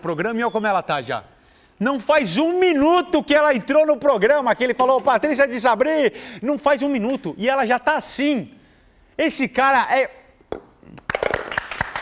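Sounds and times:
studio audience clapping: 10.9 - 12.0.

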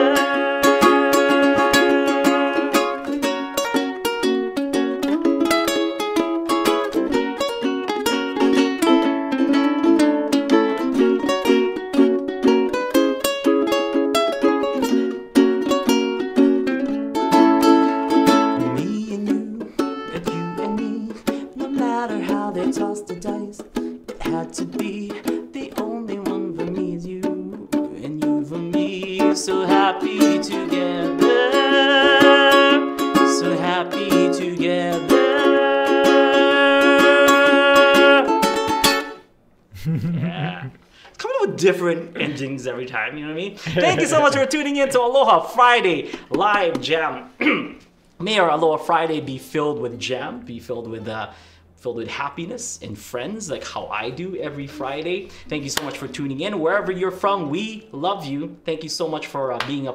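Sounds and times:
acoustic ukulele strumming chords: 0.0 - 47.9, 53.1 - 58.4.

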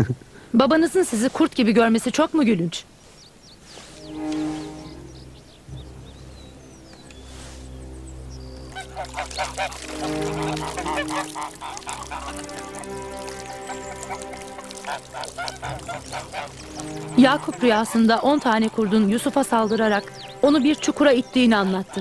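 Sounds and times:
soft background music: 3.6 - 22.0
geese honking: 3.7 - 22.0.

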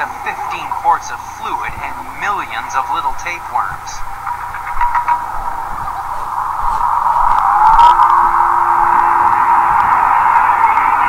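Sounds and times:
rising whistle-like glide: 5.6 - 11.0.

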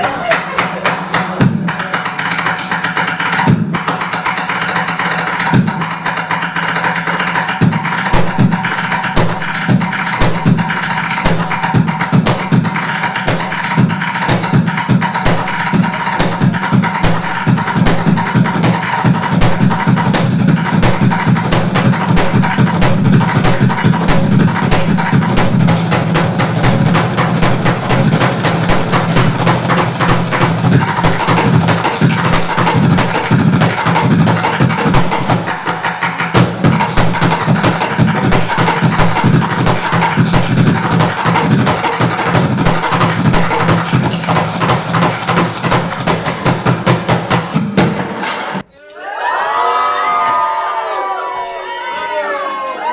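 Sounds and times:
drumsticks beating plastic buckets: 0.0 - 48.7.

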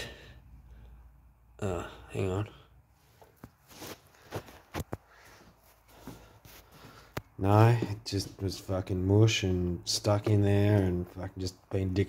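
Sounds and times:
soft rustle: 2.9 - 8.7
faint footsteps: 3.0 - 9.0.

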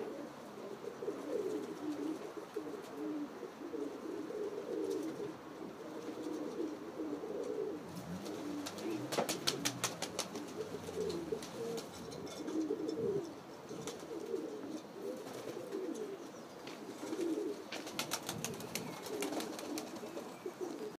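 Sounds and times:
pigeons cooing: 0.0 - 21.0.

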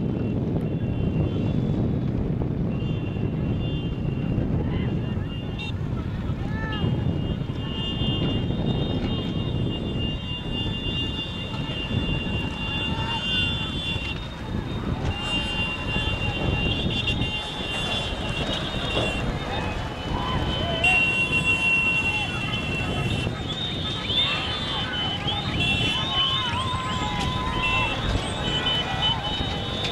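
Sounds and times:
motorcycle engines running: 0.7 - 29.9
people shouting: 12.4 - 29.9.

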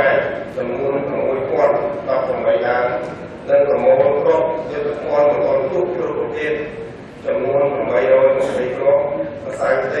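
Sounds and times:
man speaking into a microphone: 0.0 - 10.0.

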